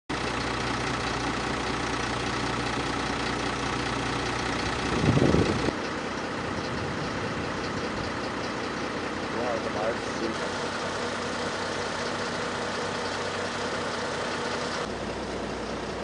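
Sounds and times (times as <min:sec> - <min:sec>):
vehicle engine idling: 0:00.1 - 0:16.0
outdoor ambient noise: 0:00.2 - 0:16.0.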